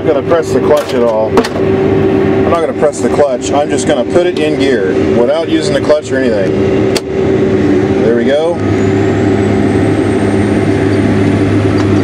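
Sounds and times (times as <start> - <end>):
faint high whine: 0.0 - 12.0
tractor diesel engine under load: 0.0 - 12.0.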